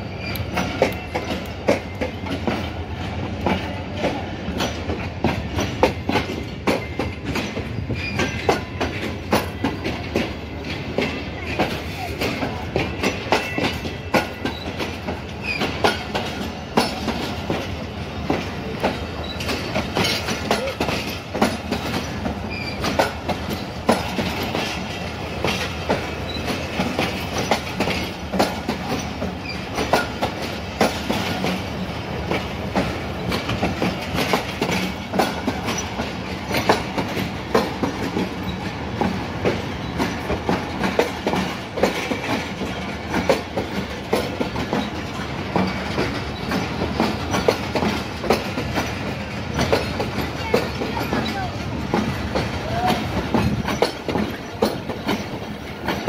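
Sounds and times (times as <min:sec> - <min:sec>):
train coaches rumbling past: 0:00.0 - 0:56.0.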